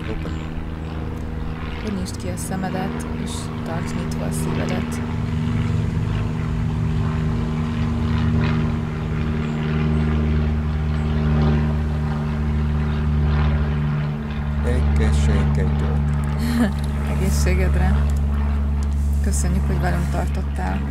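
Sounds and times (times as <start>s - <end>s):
low mechanical hum: 0.0s - 20.9s.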